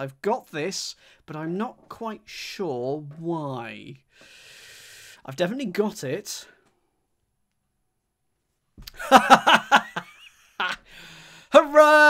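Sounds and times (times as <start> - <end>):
man chuckling: 8.8 - 11.0.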